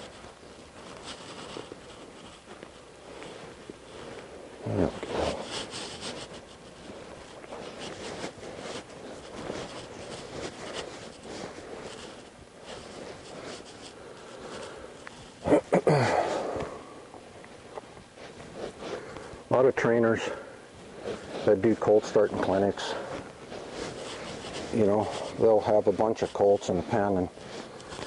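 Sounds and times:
low rustling and shuffling: 0:00.0 - 0:28.0
horse snorting: 0:04.6 - 0:05.5.

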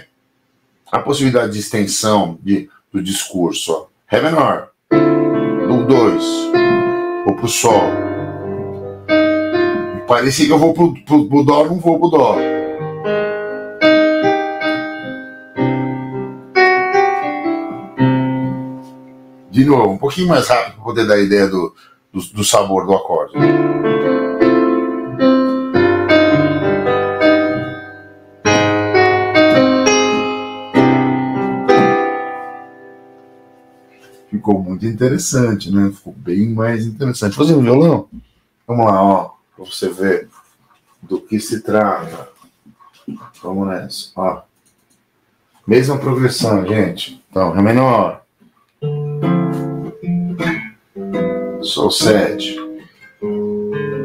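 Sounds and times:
keyboard piano chords: 0:04.2 - 0:21.7, 0:22.8 - 0:35.9, 0:48.8 - 0:54.0
classical guitar chord strum: 0:48.8 - 0:54.0.

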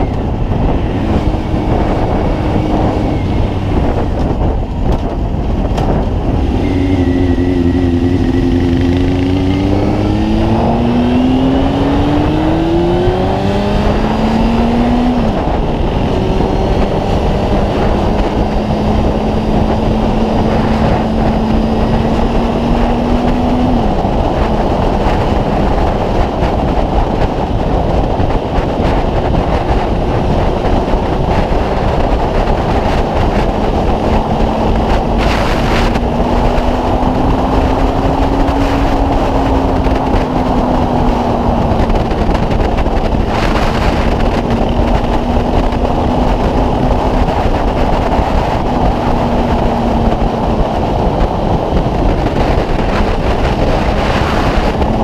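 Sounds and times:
motorcycle engine accelerating: 0:00.0 - 0:55.0
wind noise on microphone: 0:00.0 - 0:55.0.

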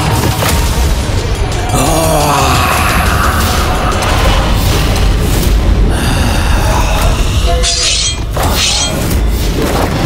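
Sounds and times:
dramatic background score: 0:00.0 - 0:10.0.

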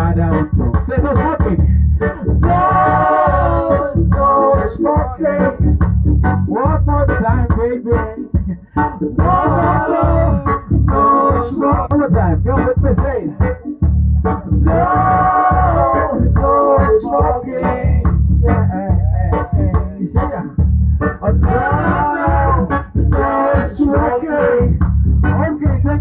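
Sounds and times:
man singing: 0:00.0 - 0:05.7, 0:06.5 - 0:13.4, 0:14.6 - 0:20.6, 0:21.2 - 0:26.0
acoustic guitar: 0:00.0 - 0:26.0
bass guitar: 0:00.0 - 0:26.0
steady beat: 0:00.0 - 0:26.0.

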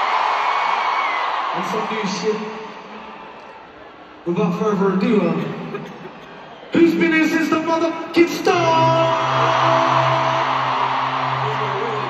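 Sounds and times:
crowd cheering and screaming: 0:00.0 - 0:04.2, 0:06.0 - 0:12.0
low synth drone: 0:08.8 - 0:12.0.

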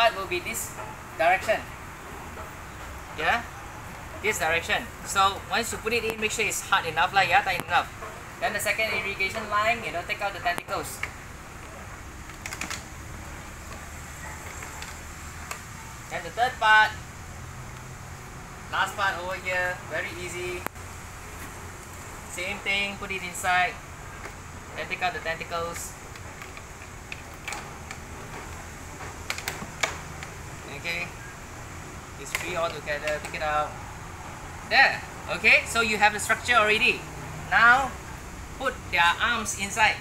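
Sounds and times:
plastic pipes clicking together: 0:12.2 - 0:12.9.

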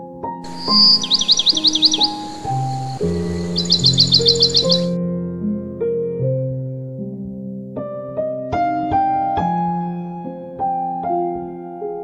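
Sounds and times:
faint outdoor hiss: 0:00.5 - 0:04.9
bird trilling: 0:00.5 - 0:05.0
slow sad solo piano music: 0:00.5 - 0:07.0.

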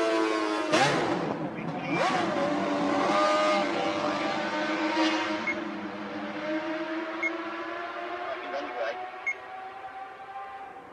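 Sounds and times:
racing motorcycle engine high revs: 0:00.0 - 0:10.8.

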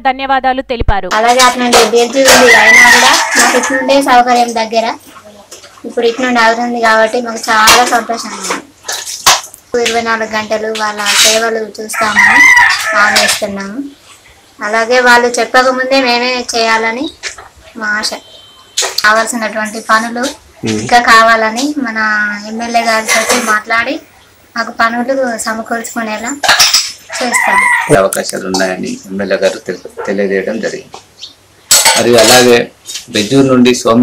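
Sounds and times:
woman speaking: 0:00.0 - 0:08.7, 0:09.7 - 0:14.0, 0:14.6 - 0:18.3, 0:18.9 - 0:26.4, 0:27.1 - 0:27.9
rooster crowing: 0:02.2 - 0:04.2, 0:11.9 - 0:13.4, 0:27.0 - 0:28.1.

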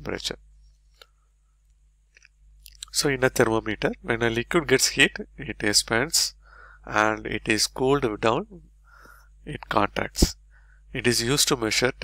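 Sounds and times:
person speaking: 0:00.0 - 0:00.4, 0:02.6 - 0:12.0
low steady hum: 0:00.0 - 0:12.0
mouth click: 0:02.1 - 0:03.0
breath: 0:06.4 - 0:06.9, 0:08.8 - 0:09.4, 0:10.5 - 0:10.9.

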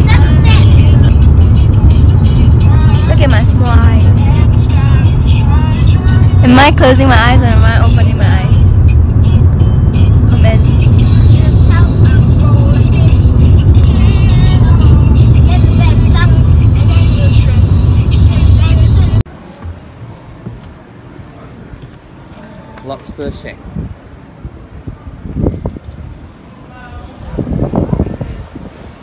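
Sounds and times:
road and engine rumble in car: 0:00.0 - 0:29.0.

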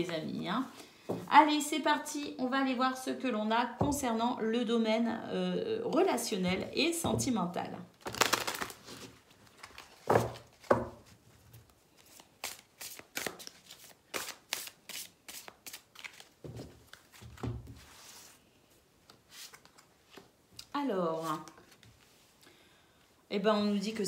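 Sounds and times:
cards being shuffled: 0:08.0 - 0:10.8, 0:12.0 - 0:17.2, 0:19.1 - 0:20.3.

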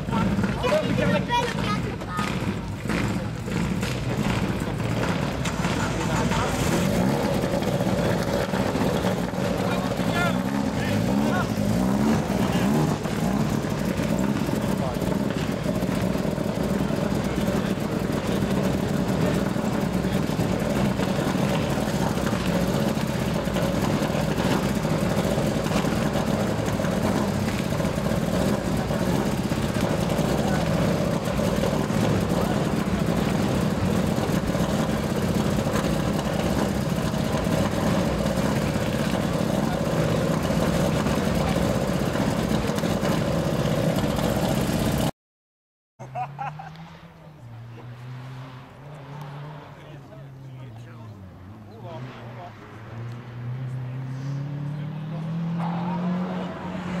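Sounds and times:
people talking: 0:00.0 - 0:03.4, 0:05.5 - 0:07.4, 0:09.4 - 0:15.8, 0:16.5 - 0:24.8, 0:28.4 - 0:35.2, 0:36.3 - 0:43.2, 0:49.6 - 0:52.9, 0:53.7 - 0:57.0
car engine idling: 0:00.0 - 0:45.1.

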